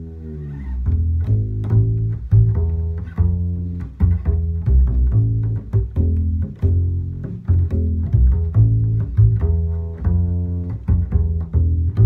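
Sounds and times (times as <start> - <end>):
pizzicato double bass line: 0.0 - 12.0.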